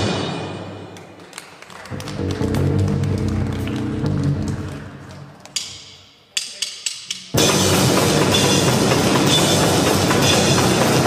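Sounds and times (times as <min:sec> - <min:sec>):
heavy band playing: 0:00.0 - 0:01.2, 0:01.9 - 0:05.0, 0:07.3 - 0:11.0
drum hits: 0:07.3 - 0:11.0.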